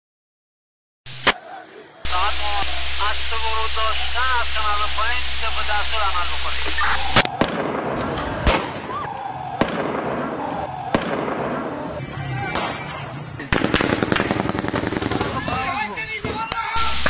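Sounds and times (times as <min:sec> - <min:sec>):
crowd shouting: 0:01.3 - 0:13.4
gunshot cracks: 0:07.2 - 0:11.8, 0:12.5 - 0:12.9, 0:13.5 - 0:15.4.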